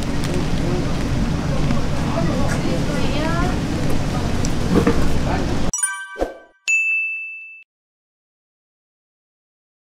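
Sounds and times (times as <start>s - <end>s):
bright ding: 5.7s - 7.7s
chime: 5.7s - 7.7s.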